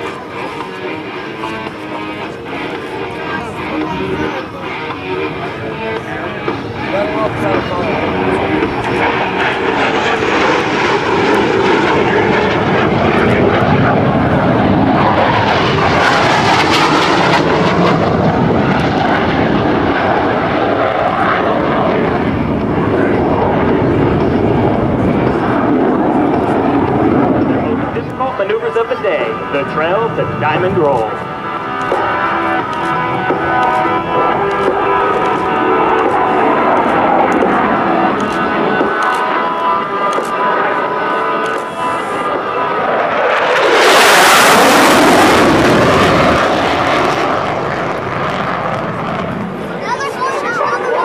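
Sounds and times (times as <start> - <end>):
fighter jet flying past: 0.0 - 51.0.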